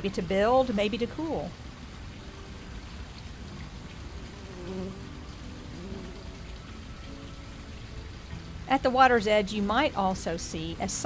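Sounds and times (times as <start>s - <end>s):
wasp wings buzzing: 4.2s - 6.7s.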